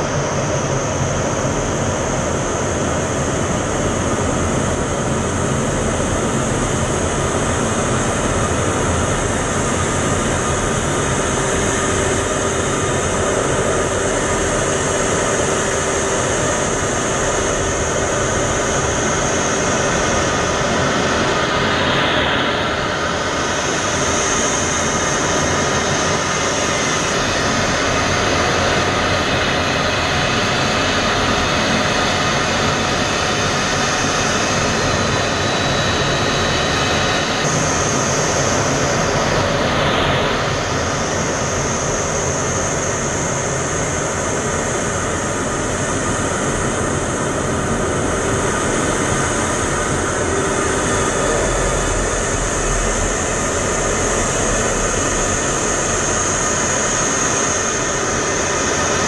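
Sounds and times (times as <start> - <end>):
jet engine and rushing air: 8.0 - 59.0.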